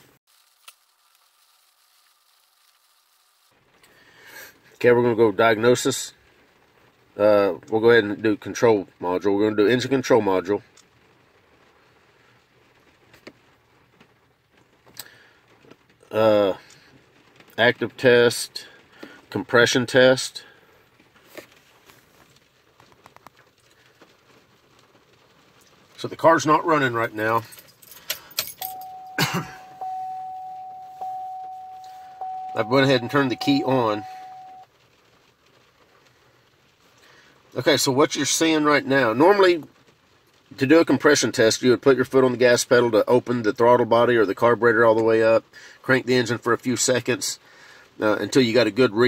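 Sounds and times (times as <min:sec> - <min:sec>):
high-pitched tone: 0:28.6 - 0:34.6.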